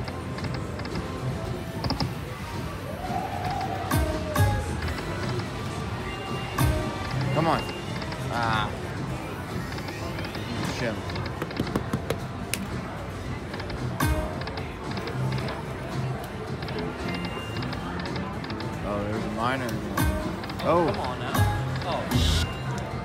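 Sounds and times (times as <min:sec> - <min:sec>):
background chatter: 0:00.0 - 0:23.0
other slot machines: 0:00.0 - 0:23.0
slot machine game music: 0:03.9 - 0:11.2, 0:13.4 - 0:23.0.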